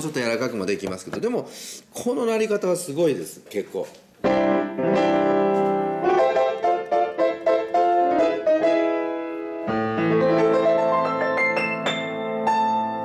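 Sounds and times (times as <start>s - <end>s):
upright piano playing chords: 4.2s - 13.0s.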